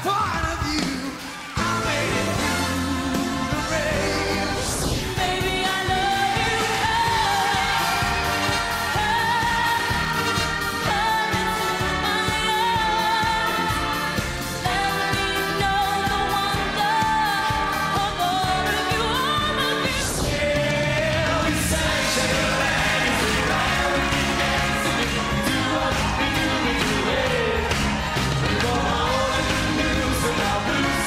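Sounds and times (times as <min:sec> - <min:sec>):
pop singers over backing track: 0:00.0 - 0:31.0.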